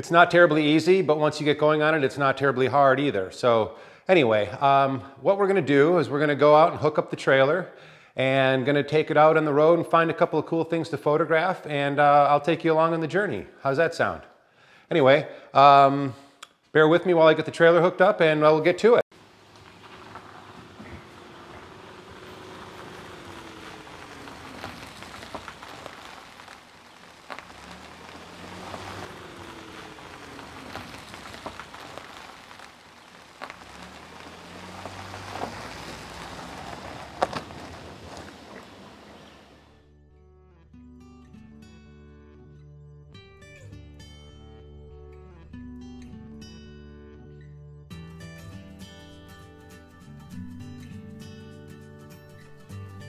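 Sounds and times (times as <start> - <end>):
van engine and tyre noise: 19.1 - 39.9
soft plucked guitar music: 40.2 - 53.0.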